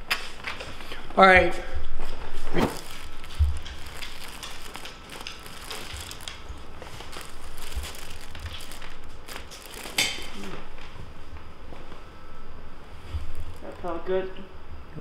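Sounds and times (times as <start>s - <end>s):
paper rustling and crinkling: 2.3s - 11.0s, 13.1s - 14.0s.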